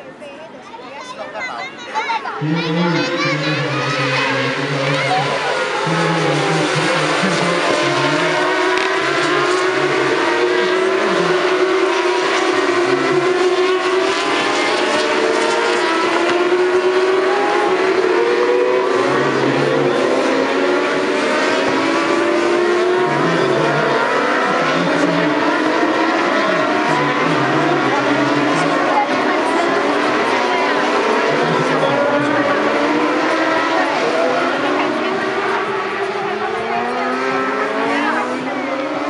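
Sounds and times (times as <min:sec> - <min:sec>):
racing motorcycles accelerating: 0:02.3 - 0:39.0.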